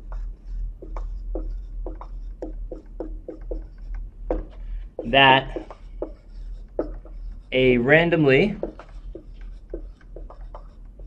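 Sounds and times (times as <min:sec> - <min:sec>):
marker squeaking on whiteboard: 0:00.0 - 0:11.0.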